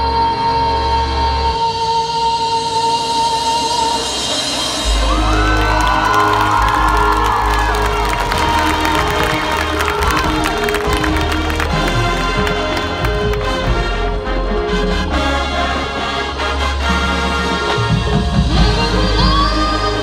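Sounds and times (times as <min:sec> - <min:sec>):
marching band brass: 0:04.1 - 0:20.0
crowd cheering and whooping: 0:04.8 - 0:13.5.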